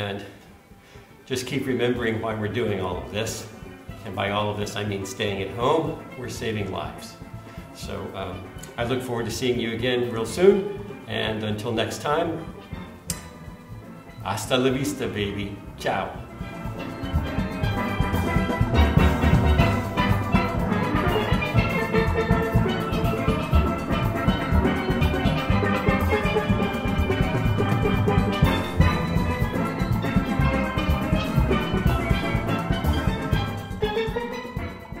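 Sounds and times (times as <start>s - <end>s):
drums: 1.0s - 35.0s
steel pans playing: 1.0s - 35.0s.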